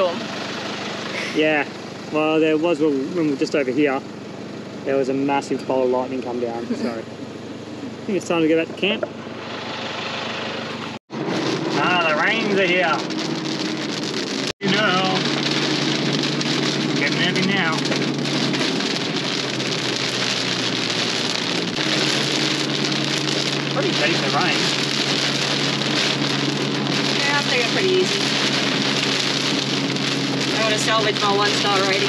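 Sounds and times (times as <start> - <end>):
engine humming: 0.0 - 32.0
heavy rain on car roof: 10.4 - 32.0.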